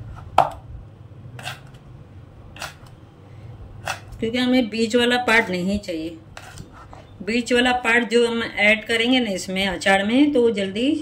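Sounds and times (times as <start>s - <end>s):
knife cutting on wooden board: 1.4s - 1.8s, 2.6s - 2.9s, 3.8s - 4.1s.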